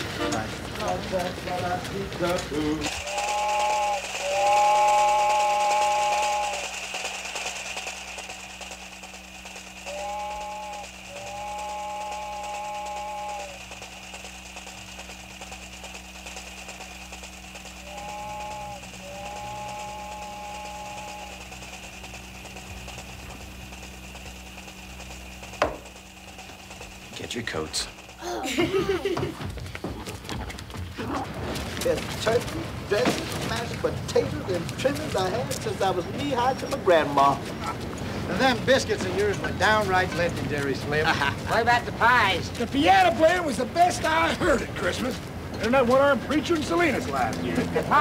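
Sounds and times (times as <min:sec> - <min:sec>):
train horn blasts: 0:00.0 - 0:00.8, 0:03.0 - 0:06.7, 0:09.8 - 0:13.6, 0:17.8 - 0:21.5
low hum with hiss: 0:00.0 - 0:29.6.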